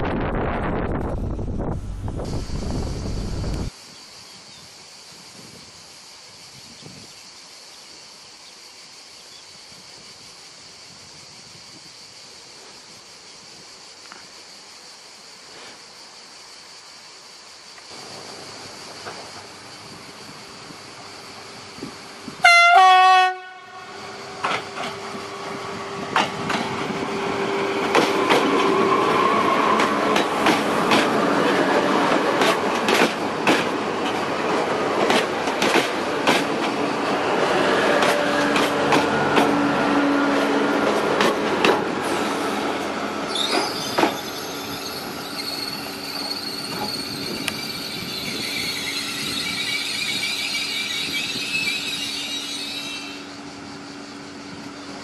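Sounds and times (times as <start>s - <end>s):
train wheels clicking over rail joints: 17.7s - 20.6s, 24.3s - 53.4s
train horn blast: 22.4s - 24.1s
high-pitched brake squeal: 43.2s - 53.7s.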